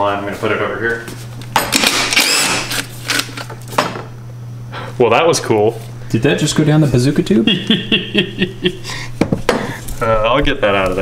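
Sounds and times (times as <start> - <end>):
cordless drill whirring: 1.7 - 3.4.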